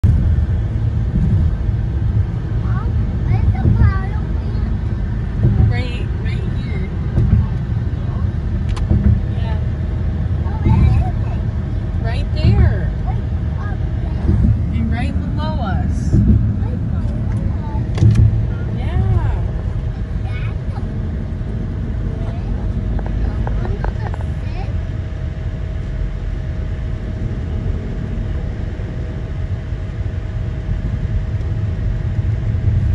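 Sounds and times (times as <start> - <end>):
car road and engine rumble: 0.0 - 32.9.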